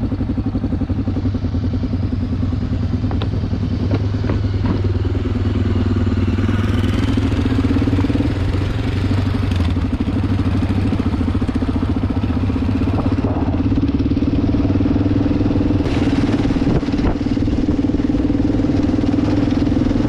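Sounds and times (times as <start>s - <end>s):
motorcycle engine at low revs: 0.0s - 20.0s.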